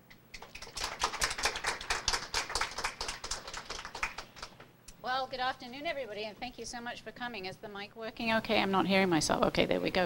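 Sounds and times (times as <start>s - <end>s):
audience applauding: 0.4s - 4.6s.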